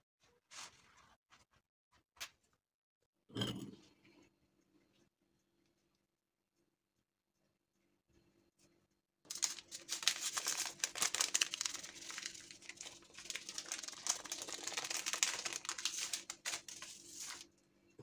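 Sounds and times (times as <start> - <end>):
paper sachet crinkling: 9.3 - 17.5.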